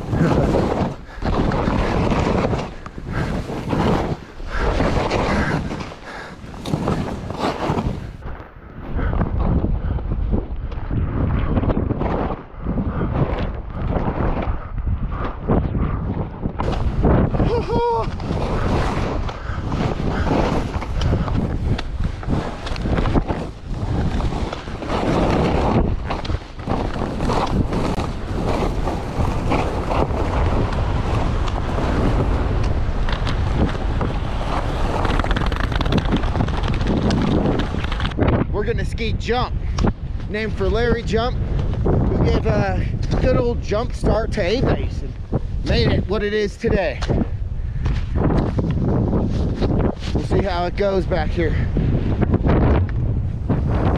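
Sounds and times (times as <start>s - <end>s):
skis carving through snow: 0.0s - 8.2s, 16.6s - 47.0s, 47.9s - 53.9s
wind buffeting microphone: 0.0s - 53.9s.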